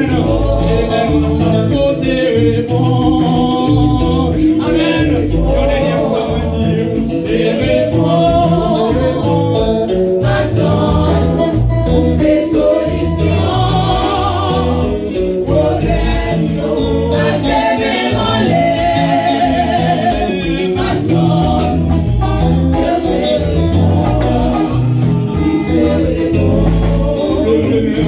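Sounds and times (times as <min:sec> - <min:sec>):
bass line: 0:00.0 - 0:28.0
drum beat: 0:00.0 - 0:28.0
gospel choir singing: 0:00.0 - 0:28.0.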